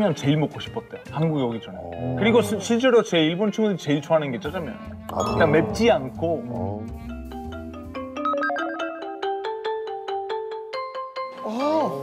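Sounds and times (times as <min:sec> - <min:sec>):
bell-like tune: 0:05.1 - 0:05.9, 0:08.2 - 0:09.6.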